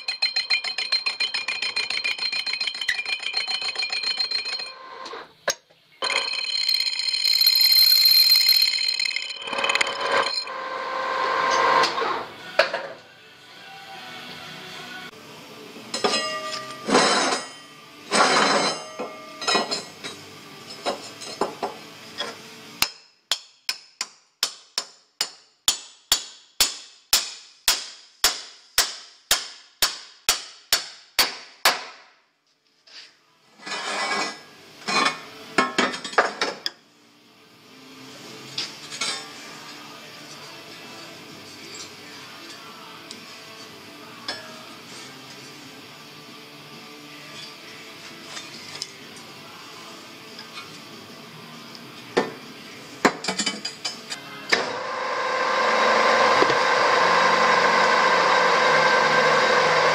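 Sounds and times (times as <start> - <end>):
bell-like ringing tone: 0.0 - 5.2, 6.0 - 11.0
hammer striking metal: 0.0 - 5.2.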